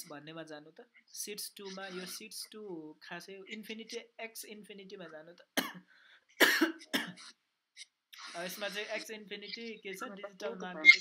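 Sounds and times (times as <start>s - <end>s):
man coughing: 5.6s - 5.8s, 6.4s - 7.2s.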